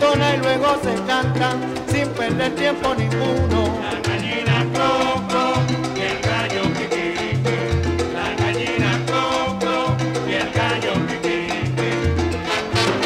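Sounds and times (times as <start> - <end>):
bass line: 0.0 - 13.0
latin percussion: 0.0 - 13.0
salsa band playing: 0.0 - 13.0.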